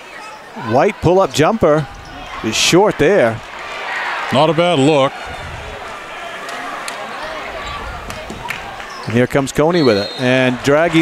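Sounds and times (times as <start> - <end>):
arena crowd murmur: 0.0 - 11.0.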